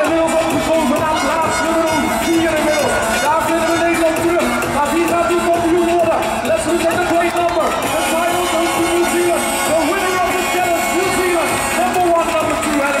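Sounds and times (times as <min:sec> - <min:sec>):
crowd noise: 0:00.0 - 0:13.0
man calling over public address: 0:00.0 - 0:13.0.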